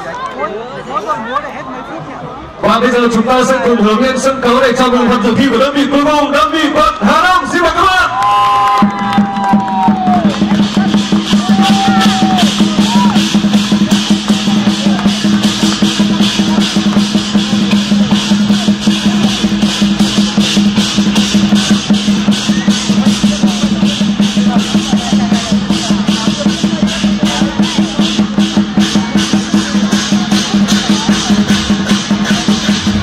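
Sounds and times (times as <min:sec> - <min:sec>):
drums and cymbals beating: 0:02.6 - 0:33.0.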